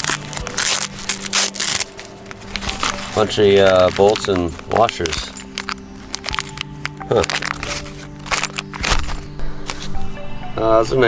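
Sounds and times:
paper and plastic bag crinkling: 0.0s - 10.0s
background music: 0.0s - 11.0s.

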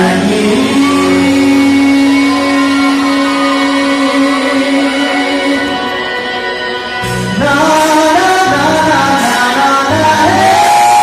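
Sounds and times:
man singing into a microphone: 0.0s - 11.0s.

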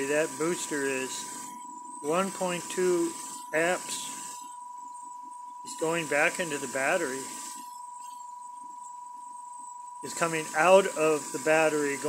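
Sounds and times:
faint electric motor whine: 0.0s - 12.0s.

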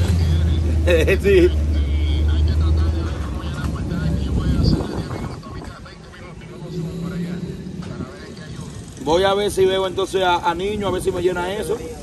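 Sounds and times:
indistinct voices: 0.0s - 9.6s.

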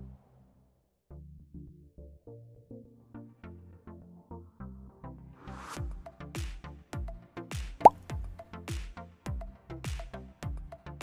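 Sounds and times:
electronic music with kick drums: 7.9s - 10.8s.

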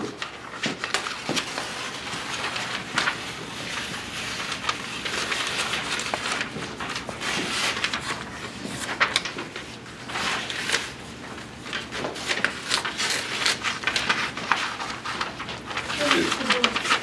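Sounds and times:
paper rustling: 0.0s - 17.0s
paper tearing: 0.1s - 17.0s.

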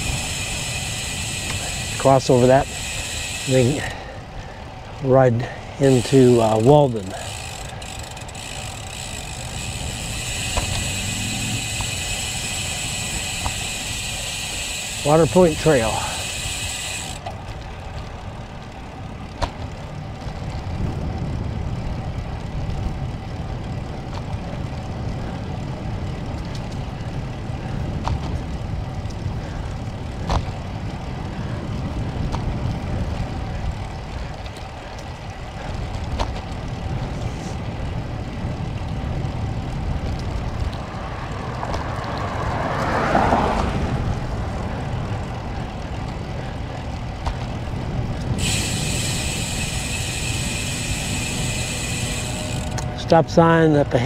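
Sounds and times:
wind rumbling on microphone: 0.0s - 15.0s, 15.6s - 54.0s
bicycle tyre noise: 0.0s - 54.0s.

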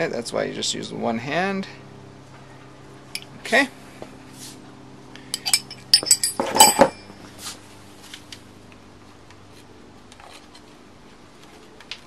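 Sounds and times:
faint steady hum: 0.0s - 12.0s
steel hand tools clattering: 5.4s - 7.2s.

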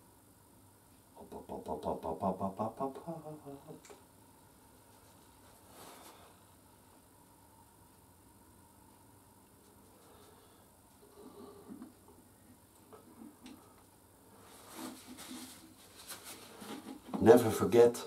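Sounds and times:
faint rustling: 12.8s - 17.3s.

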